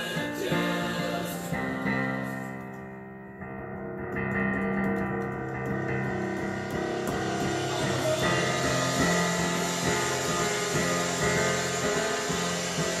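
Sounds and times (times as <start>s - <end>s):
digital piano chords: 0.0s - 13.0s.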